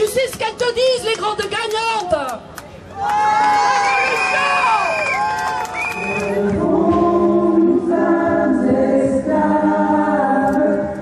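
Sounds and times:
crowd singing a protest chant: 6.0 - 11.0.

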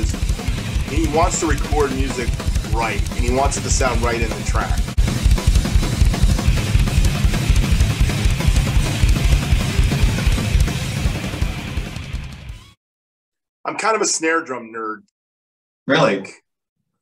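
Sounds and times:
rapid bass drum strokes: 0.0 - 12.6.

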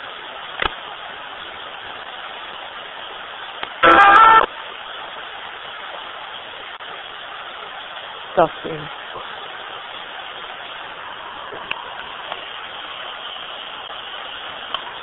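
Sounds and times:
radio static hiss: 3.3 - 4.7, 6.4 - 15.0
tonal burst of broadcast sound: 3.8 - 4.5.

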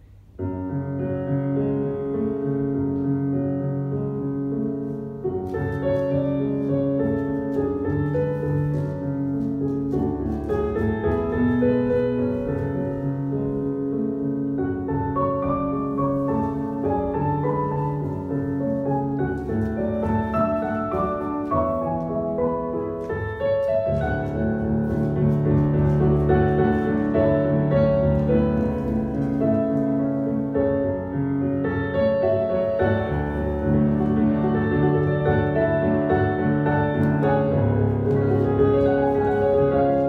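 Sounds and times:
piano music: 0.0 - 40.0.

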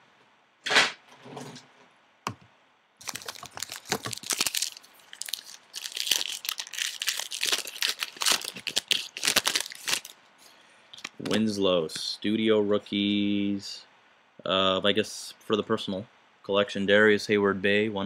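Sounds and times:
wrapper tearing and crinkling: 3.0 - 10.2.

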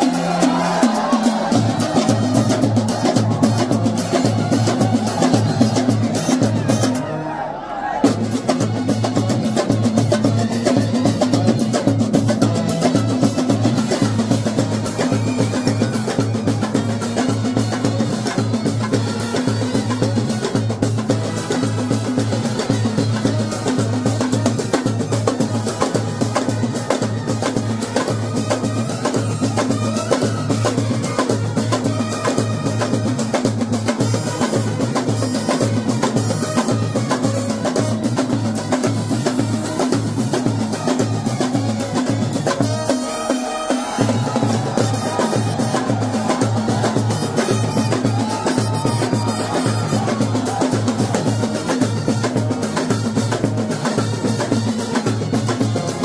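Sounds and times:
bass drums and side drums: 0.0 - 7.1, 8.0 - 56.0
brass band playing: 0.0 - 56.0.

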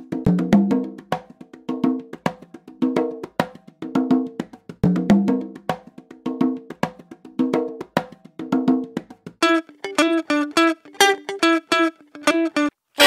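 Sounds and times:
funk guitar chord stabs: 9.4 - 12.7.

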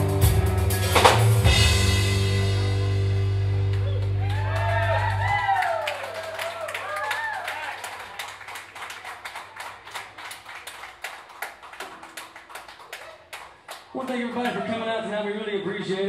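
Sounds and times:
crowd clapping: 3.5 - 15.0
whoops and cheers: 3.8 - 8.0, 14.4 - 14.8.

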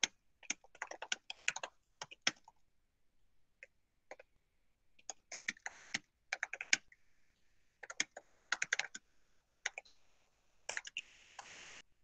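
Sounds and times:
typing on computer keyboard: 0.0 - 2.6, 5.0 - 6.9, 7.8 - 9.0, 9.6 - 9.9, 10.7 - 11.0.

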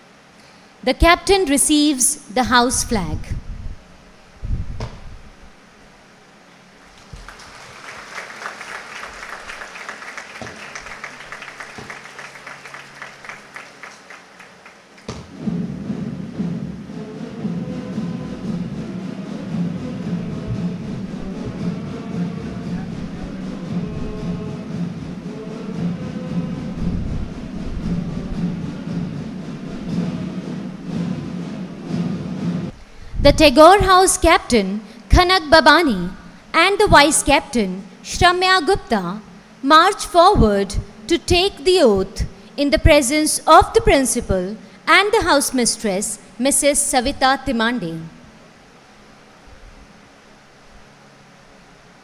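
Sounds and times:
audience applause: 6.9 - 15.1
instrumental music: 7.9 - 32.7.

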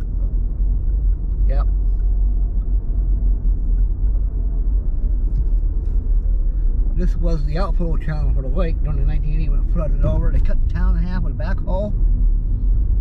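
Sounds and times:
car engine and tyres rumble: 0.0 - 13.0.

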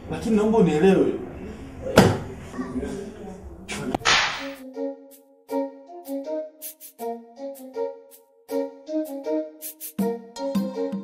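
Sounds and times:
keyboard notes music: 4.5 - 11.0
sharp swish effect: 6.6 - 7.0.

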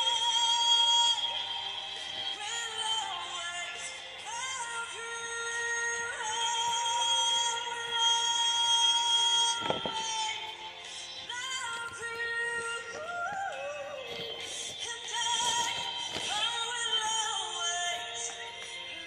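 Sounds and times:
backing music: 0.0 - 19.0.

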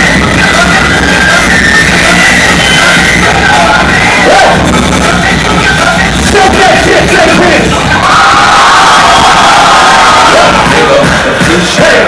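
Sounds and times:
crowd noise: 0.0 - 12.0
heavy bass line: 0.0 - 12.0
loud hip-hop music: 0.0 - 12.0.

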